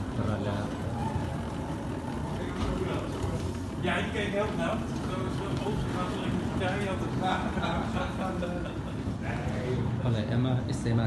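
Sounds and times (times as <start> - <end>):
wheeled cases rolling on floor: 0.0 - 10.1
faint voices: 0.0 - 11.0.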